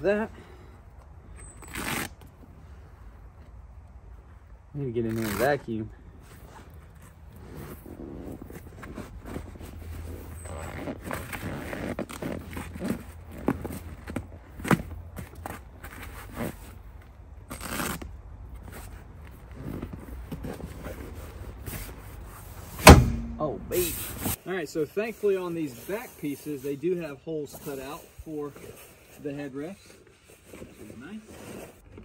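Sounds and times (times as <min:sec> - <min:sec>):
fabric rustling and scraping: 0:06.2 - 0:24.4, 0:25.0 - 0:32.0.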